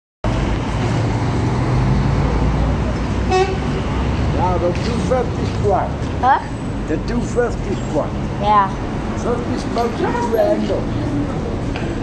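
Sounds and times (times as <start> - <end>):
traffic rumble: 0.2 - 12.0
car horn toot: 3.2 - 3.7.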